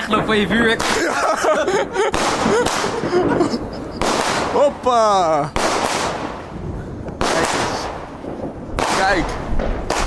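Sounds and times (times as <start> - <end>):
firework bang: 1.9 - 4.9, 5.5 - 10.0
firework crackling pops: 2.1 - 10.0.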